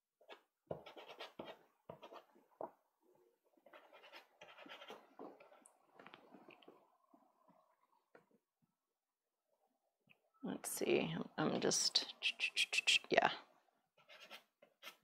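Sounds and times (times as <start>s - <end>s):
pastel scratching on paper: 0.2s - 2.3s, 3.7s - 5.6s, 14.0s - 15.0s.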